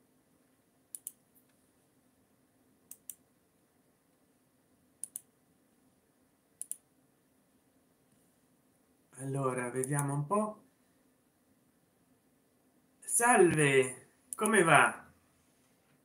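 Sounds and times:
computer mouse double clicks: 5.0s - 5.3s.

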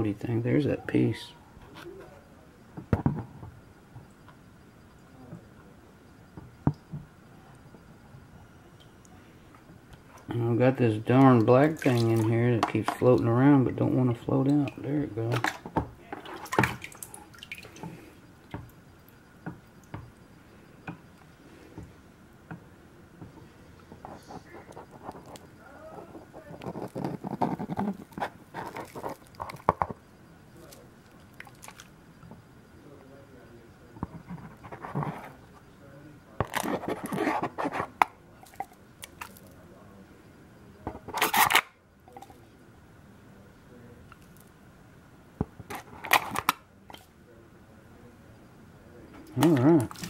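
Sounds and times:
water sloshing and splashing: 11.1s - 13.2s, 16.2s - 18.6s, 31.1s - 31.9s.

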